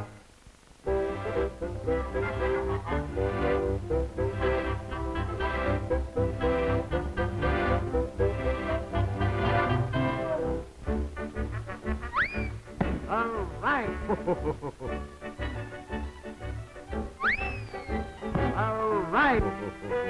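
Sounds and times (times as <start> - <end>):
cartoon music: 11.3 - 20.0.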